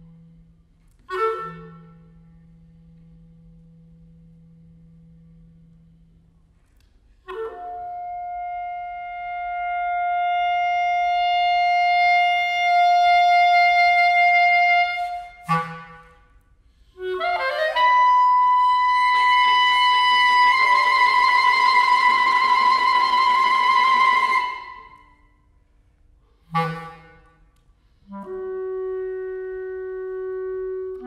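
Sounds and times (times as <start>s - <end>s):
clarinet playing: 0.0s - 2.9s, 7.2s - 25.5s, 26.4s - 31.0s
viola bowed sustained tone: 0.0s - 25.2s, 26.5s - 31.0s.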